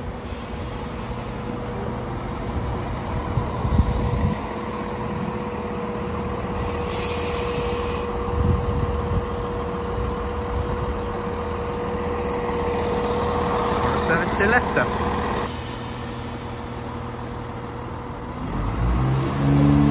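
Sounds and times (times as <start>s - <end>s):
diesel train engine whine: 0.0s - 19.9s
short hiss: 6.6s - 8.1s.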